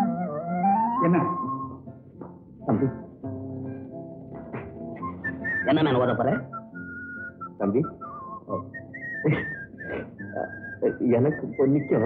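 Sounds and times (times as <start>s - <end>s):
person whistling a tune: 0.0s - 1.9s, 5.0s - 12.0s.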